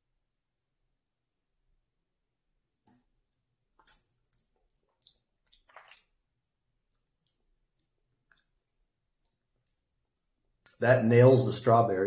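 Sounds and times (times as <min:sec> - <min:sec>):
mouth clicks and lip smacks: 0:03.7 - 0:06.2, 0:06.8 - 0:10.0, 0:10.6 - 0:10.8.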